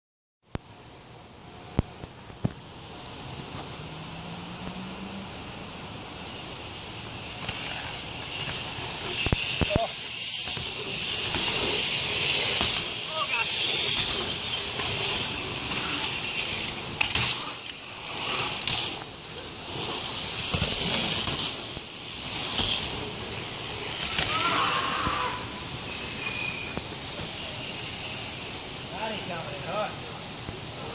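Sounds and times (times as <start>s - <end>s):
bike tyres rolling on dirt: 0.5s - 30.9s.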